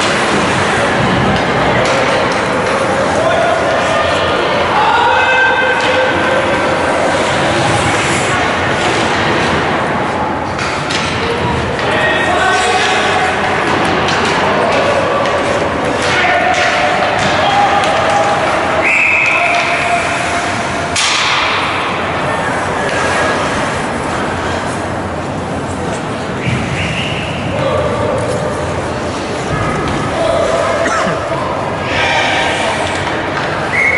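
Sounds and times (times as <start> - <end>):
steady crowd din: 0.0 - 33.9
spectators shouting: 11.8 - 22.7
stick puck and board hits: 13.6 - 18.5, 21.0 - 21.7
shrill whistle blast: 18.8 - 19.4.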